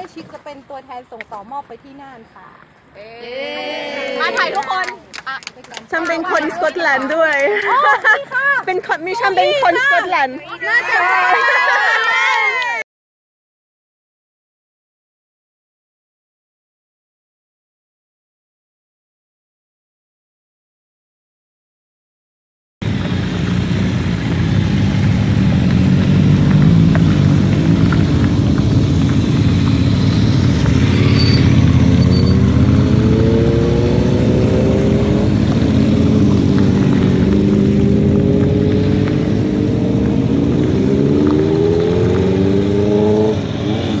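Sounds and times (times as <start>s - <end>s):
motorcycles riding past: 22.8s - 44.0s.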